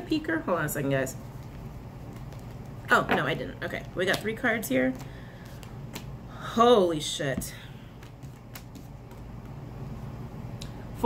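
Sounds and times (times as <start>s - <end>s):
cards clicking and rustling: 4.9s - 6.1s, 8.0s - 9.6s.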